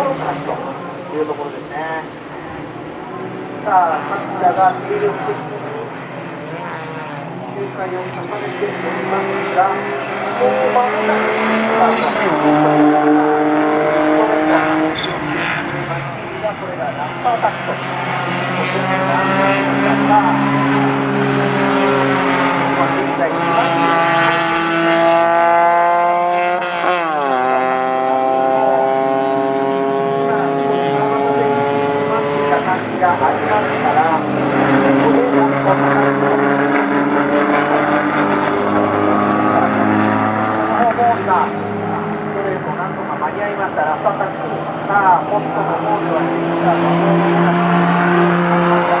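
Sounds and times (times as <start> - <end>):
race car engine at full throttle: 0.0 - 49.0.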